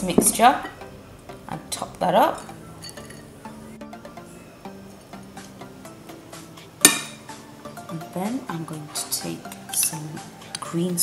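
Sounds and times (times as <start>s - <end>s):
soft background music: 0.0s - 11.0s
metal spoon clinking on glass bowl: 2.4s - 3.3s.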